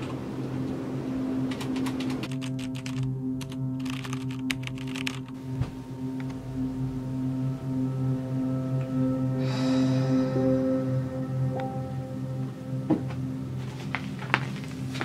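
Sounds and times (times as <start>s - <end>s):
background music sustained notes: 0.0s - 15.0s
typing on computer keyboard: 1.5s - 5.3s.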